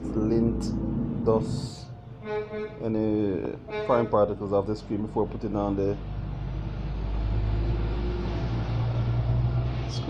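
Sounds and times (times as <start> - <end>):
low rumble with deep hum: 0.0 - 5.1.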